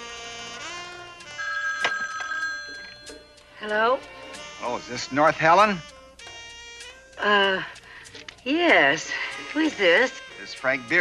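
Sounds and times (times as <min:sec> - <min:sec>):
telephone bell ringing: 0:01.4 - 0:03.4.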